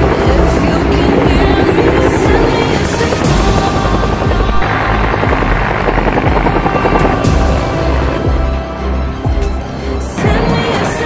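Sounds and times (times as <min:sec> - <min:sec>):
helicopter rotor beating: 0:00.0 - 0:11.0.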